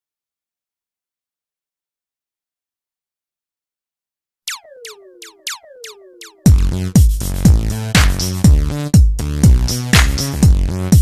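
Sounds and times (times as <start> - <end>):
synthesizer zaps falling in pitch: 4.5 - 7.0.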